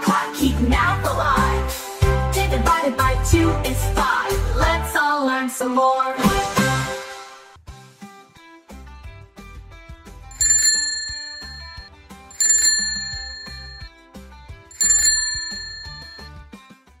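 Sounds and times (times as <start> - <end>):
bell chimes: 10.4 - 13.9, 14.7 - 16.3.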